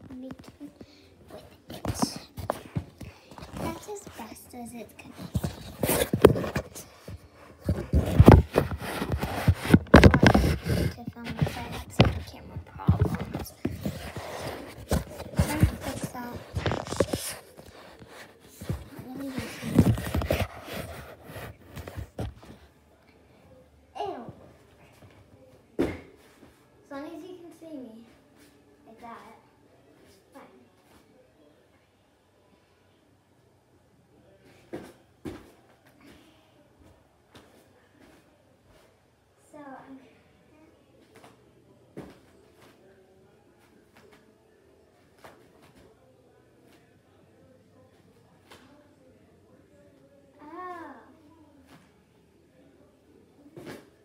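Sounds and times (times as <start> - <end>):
thumps on gymnastics mat: 25.8 - 26.1.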